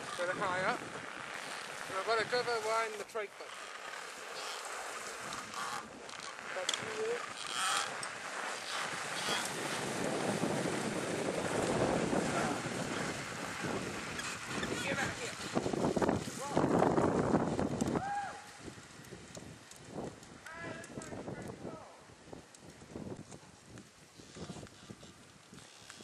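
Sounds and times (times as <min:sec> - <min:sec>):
wind blowing across microphone: 0:00.0 - 0:03.3, 0:04.4 - 0:26.0.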